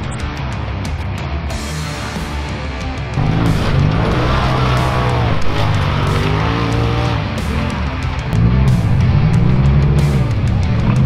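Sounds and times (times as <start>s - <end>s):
loud rock music with guitar: 0.0s - 11.0s
race car engine revving: 3.0s - 11.0s.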